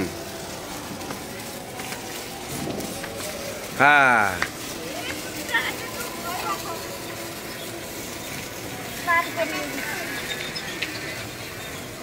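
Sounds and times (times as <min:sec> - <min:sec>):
sparklers fizzing: 0:00.0 - 0:12.0.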